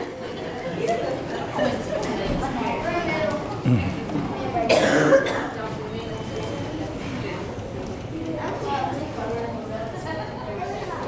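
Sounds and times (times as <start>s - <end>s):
murmured chatter: 0.0s - 11.0s
person coughing: 3.6s - 4.0s, 4.7s - 5.6s.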